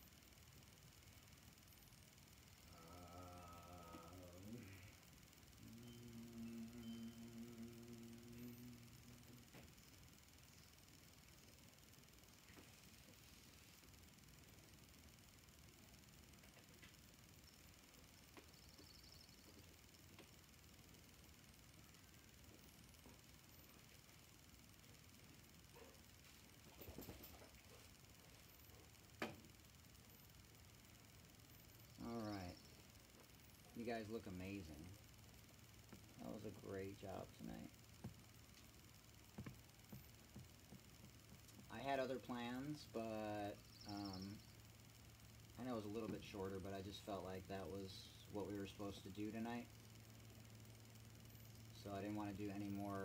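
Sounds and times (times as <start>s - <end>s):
low steady hum: 0.0s - 53.0s.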